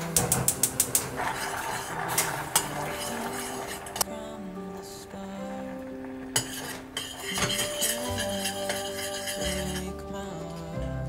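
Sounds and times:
background music: 0:00.0 - 0:11.0
metal spoon clinking on saucepan: 0:06.4 - 0:09.9.

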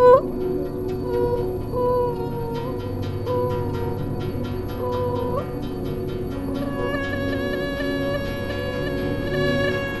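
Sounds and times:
pulsing high tones: 0:00.0 - 0:10.0
steady low drone: 0:00.0 - 0:10.0.

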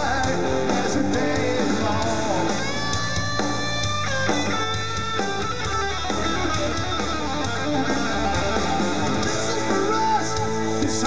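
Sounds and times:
electric guitar: 0:00.0 - 0:11.0
rock band playing instrumental: 0:00.0 - 0:11.0.

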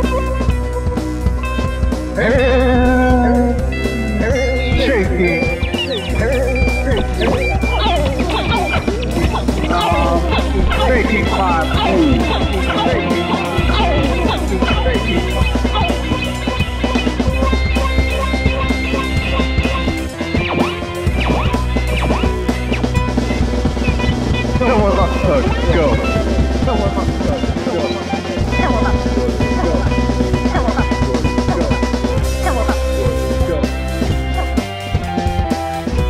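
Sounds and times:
sliding guitar lines: 0:00.0 - 0:36.0
steady bass: 0:00.0 - 0:36.0
drum hits: 0:05.6 - 0:36.0.

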